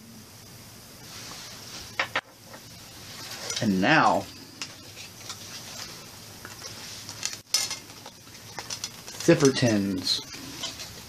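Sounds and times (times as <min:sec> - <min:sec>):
tin rattling: 0:07.1 - 0:11.0.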